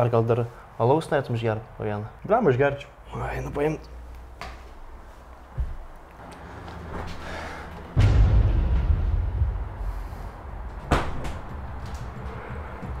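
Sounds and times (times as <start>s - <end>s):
low rumble: 6.2s - 13.0s
heavy thump: 7.0s - 13.0s
sharp knock: 8.0s - 12.1s.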